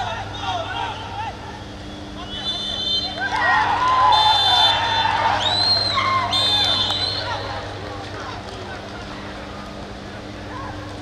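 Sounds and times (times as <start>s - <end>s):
crowd noise: 0.0s - 11.0s
referee's whistle blasts: 2.2s - 3.2s, 4.1s - 7.4s
players shouting: 2.2s - 8.7s.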